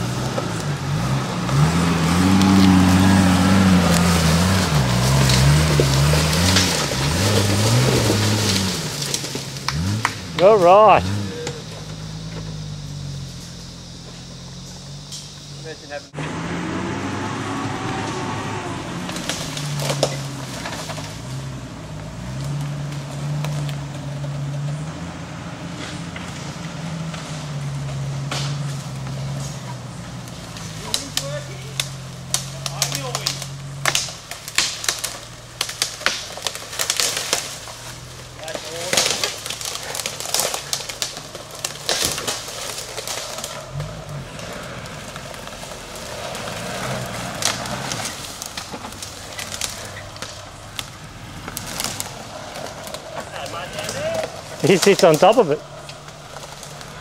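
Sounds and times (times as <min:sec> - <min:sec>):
car engine at low revs: 0:00.0 - 0:57.0
sticks crackling under tyres: 0:00.0 - 0:57.0.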